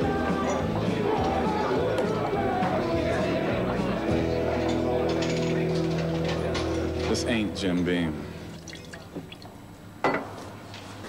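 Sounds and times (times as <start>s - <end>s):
music: 0.0s - 8.6s
liquid dripping: 8.5s - 9.6s.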